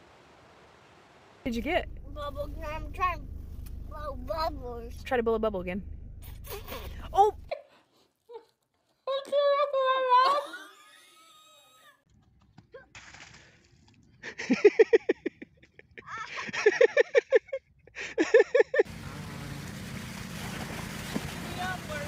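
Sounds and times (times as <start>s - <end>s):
bursts of laughter: 14.2s - 18.9s.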